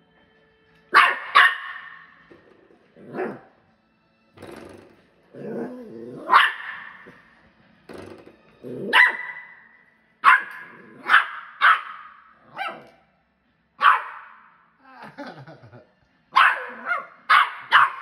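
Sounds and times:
puppy barking: 0:00.9 - 0:02.2, 0:03.0 - 0:03.6, 0:05.4 - 0:07.3, 0:08.8 - 0:13.0, 0:13.8 - 0:14.6, 0:16.3 - 0:18.0
puppy growling: 0:02.9 - 0:03.5, 0:05.3 - 0:07.2, 0:08.6 - 0:09.0, 0:10.6 - 0:11.1.

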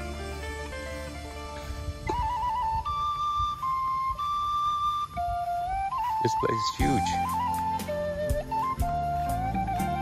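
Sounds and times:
soft chordal music: 0:00.0 - 0:10.0
solo flute melody: 0:00.0 - 0:10.0.

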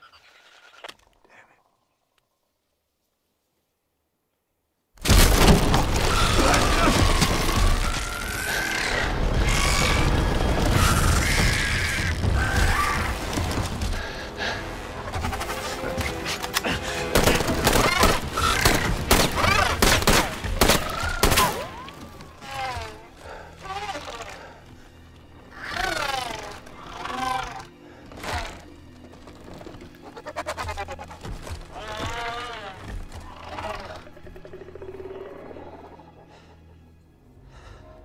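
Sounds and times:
movie music: 0:05.2 - 0:38.0
creature creaking calls: 0:05.9 - 0:13.4, 0:17.7 - 0:20.0, 0:20.8 - 0:24.6, 0:25.4 - 0:28.7, 0:29.9 - 0:36.3.

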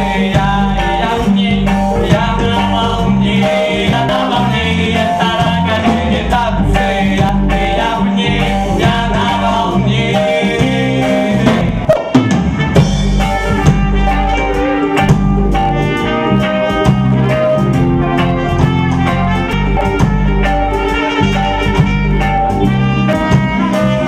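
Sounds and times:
horns playing melody: 0:00.0 - 0:24.0
reggae band playing: 0:00.0 - 0:24.0.

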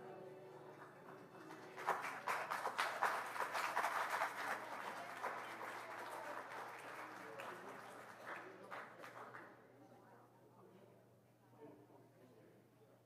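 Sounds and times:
audience applauding: 0:00.6 - 0:09.4.

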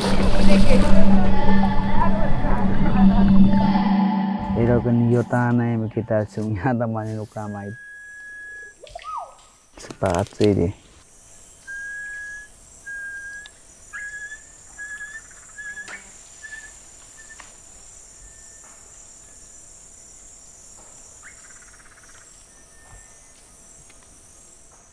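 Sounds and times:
insects chorus: 0:04.5 - 0:24.9.

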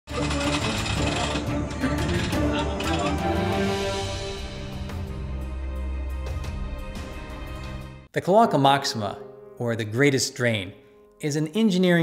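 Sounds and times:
clicking percussion rhythm: 0:00.2 - 0:03.6
theme music held melodic notes: 0:00.2 - 0:10.0.

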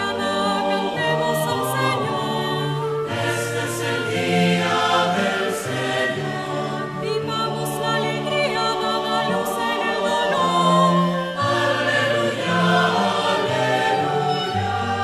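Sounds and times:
choir singing chant: 0:00.0 - 0:15.0.

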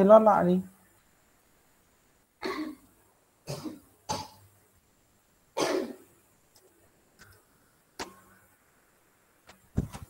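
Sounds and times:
person coughing: 0:02.4 - 0:02.8, 0:03.5 - 0:04.4, 0:05.6 - 0:06.1.

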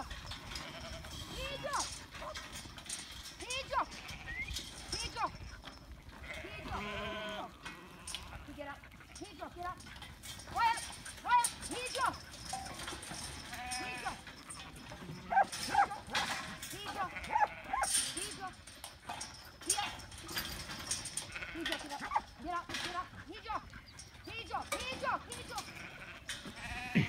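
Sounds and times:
sheep bleating: 0:03.7 - 0:04.5, 0:06.2 - 0:09.2, 0:13.4 - 0:16.0, 0:16.8 - 0:17.9, 0:21.2 - 0:22.2, 0:25.3 - 0:27.0.

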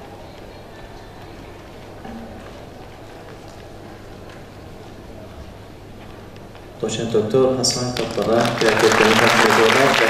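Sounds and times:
hall room noise with low hum: 0:00.0 - 0:10.0.

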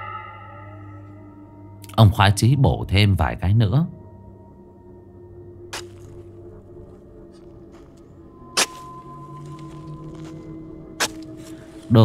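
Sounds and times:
ambient music drone: 0:00.0 - 0:12.0
sharp hoe strikes: 0:08.6 - 0:08.9, 0:11.0 - 0:11.5.

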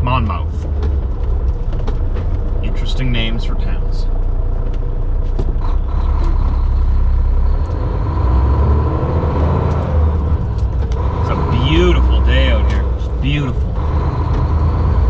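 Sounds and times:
truck diesel engine rumble: 0:00.0 - 0:15.0.

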